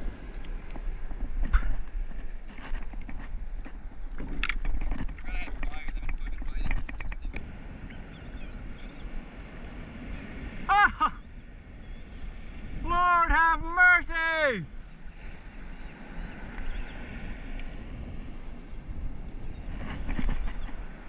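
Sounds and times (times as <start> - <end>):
wind rumbling on microphone: 0.0 - 21.0
knocks and clicks of fishing rods: 0.7 - 7.5
man shouting: 10.7 - 11.2, 12.8 - 14.7.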